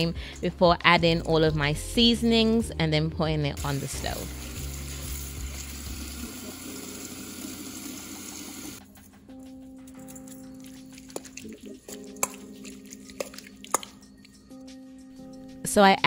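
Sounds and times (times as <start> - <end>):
soft background music: 0.0 - 16.0
spoon clinking on steel bowl: 10.1 - 14.4
tap water splashing into bowl: 13.1 - 14.0.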